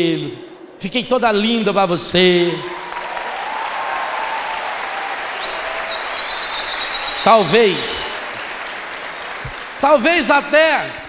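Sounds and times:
audience applauding: 2.6s - 10.7s
high whistle-like tone: 5.4s - 7.5s.

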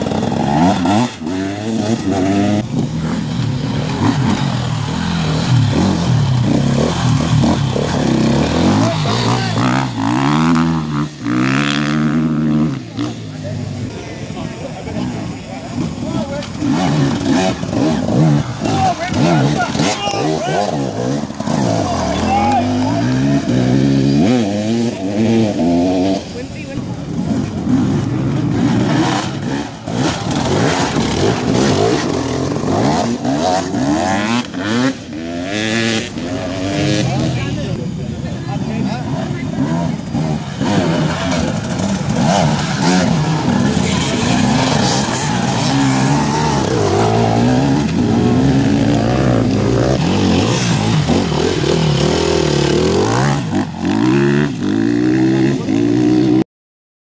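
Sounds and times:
dirt bike engines revving: 0.0s - 56.4s.

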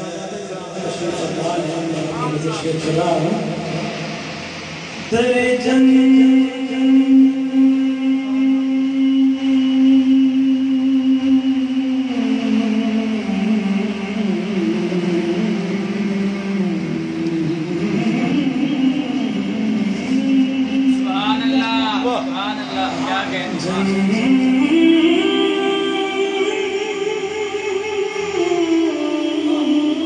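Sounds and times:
young man singing: 5.1s - 22.4s, 23.4s - 30.0s.

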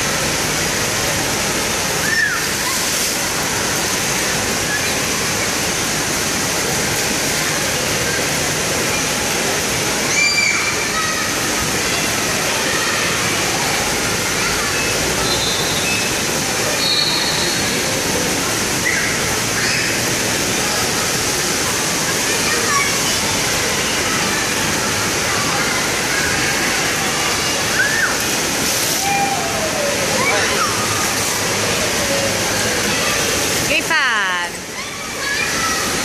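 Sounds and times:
running and splashing water: 0.0s - 36.0s
people's voices and shouts: 21.2s - 36.0s.

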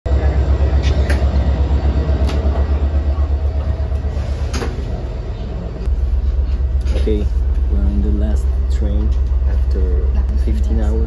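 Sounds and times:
deep pulsing train rumble: 0.0s - 11.0s.

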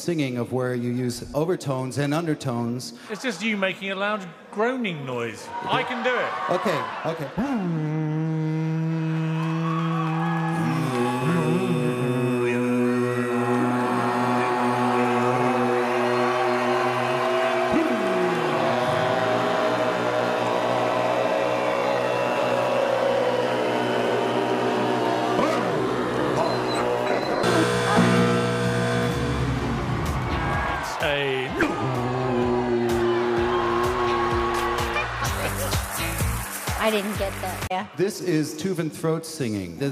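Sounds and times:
throat singing: 7.4s - 19.6s.

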